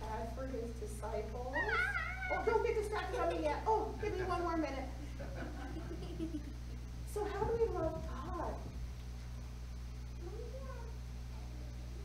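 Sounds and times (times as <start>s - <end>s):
low electrical hum: 0.0s - 12.0s
child vocal sound: 1.6s - 2.5s.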